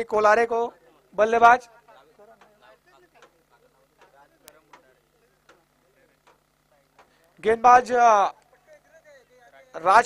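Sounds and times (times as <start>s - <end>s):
faint distant voices chattering: 0.0s - 10.0s.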